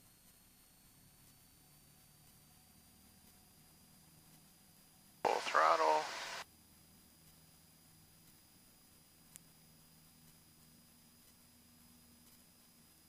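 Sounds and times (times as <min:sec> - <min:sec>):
faint steady hiss: 0:04.4 - 0:06.4
voice over radio headset: 0:05.3 - 0:06.4.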